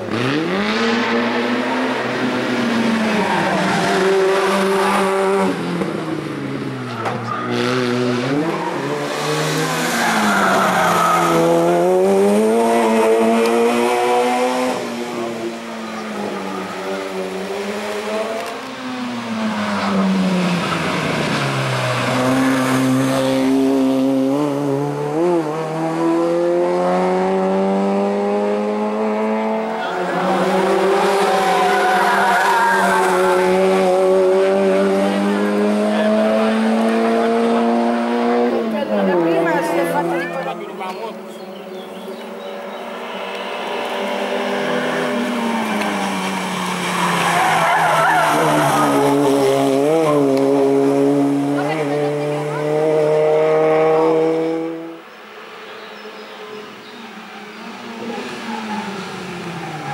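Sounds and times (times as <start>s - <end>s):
car engine revving hard: 0.0s - 5.8s, 7.4s - 15.6s, 19.3s - 40.1s, 43.5s - 55.0s.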